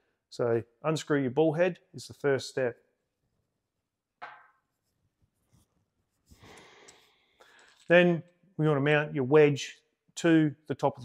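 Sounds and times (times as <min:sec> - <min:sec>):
short breath: 0:06.3 - 0:07.9.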